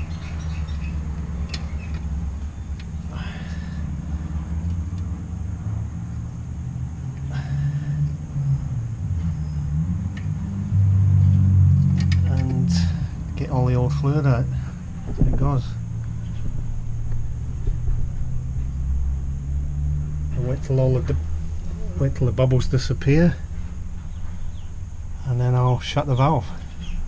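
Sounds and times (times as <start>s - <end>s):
low rumble: 1.4s - 27.0s.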